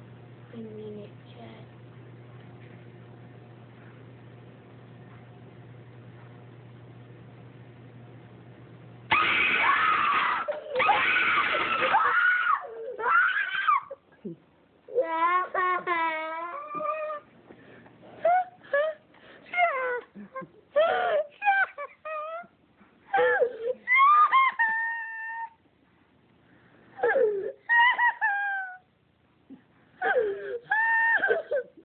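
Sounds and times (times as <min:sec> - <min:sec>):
boy crying and whimpering: 0:12.0 - 0:14.0, 0:14.9 - 0:17.3, 0:18.2 - 0:20.2, 0:20.8 - 0:22.5, 0:23.1 - 0:25.6, 0:27.0 - 0:28.9, 0:30.0 - 0:31.8.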